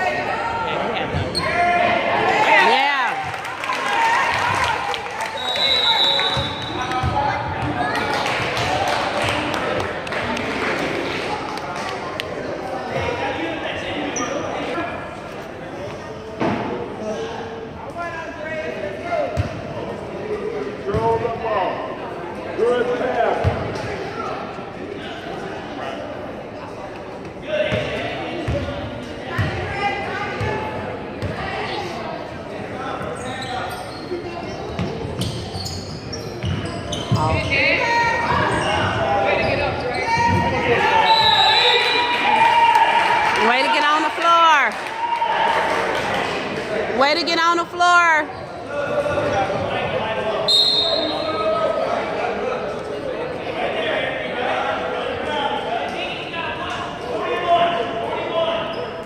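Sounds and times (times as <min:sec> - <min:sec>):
indistinct shouts and chatter: 0:29.0 - 0:59.0.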